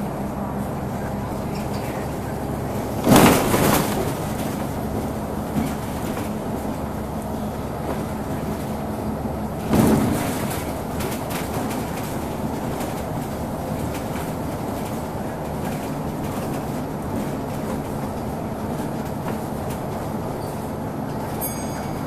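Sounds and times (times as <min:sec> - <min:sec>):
bus engine and road drone: 0:00.0 - 0:22.0
knocks from bus body: 0:02.9 - 0:06.5, 0:09.6 - 0:13.1.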